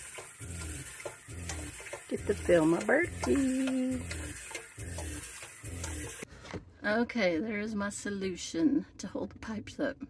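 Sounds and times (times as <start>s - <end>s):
water pouring into filter: 0.0s - 6.2s.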